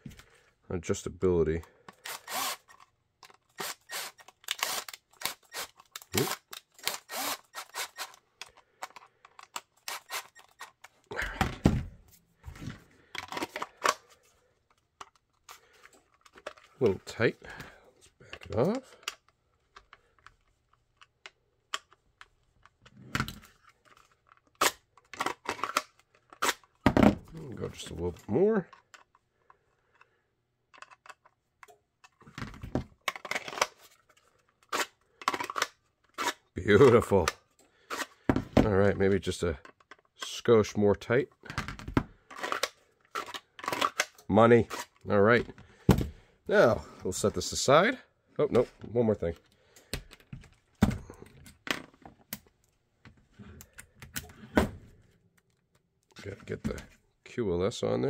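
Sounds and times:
plastic parts clicking and tapping: 1.6s - 11.8s, 12.6s - 16.8s, 17.5s - 27.2s, 28.7s - 38.8s, 39.5s - 44.3s, 49.3s - 54.7s
cordless driver running: 2.1s - 2.7s, 3.6s - 8.2s.

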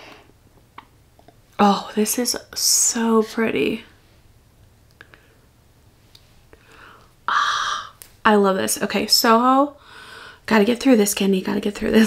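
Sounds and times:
soft breath: 6.4s - 8.0s, 9.8s - 10.4s.

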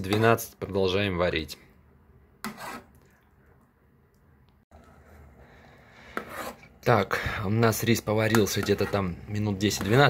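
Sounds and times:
spoon scraping pot: 0.0s - 0.5s, 2.4s - 3.1s, 6.0s - 6.8s, 7.7s - 10.0s
metal spoon stirring in pot: 2.4s - 3.1s, 6.0s - 6.8s, 7.8s - 10.0s.

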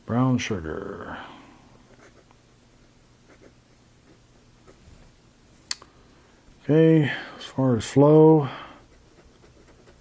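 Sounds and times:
pen scratching on paper: 1.9s - 2.3s, 3.3s - 4.8s, 8.9s - 10.0s.

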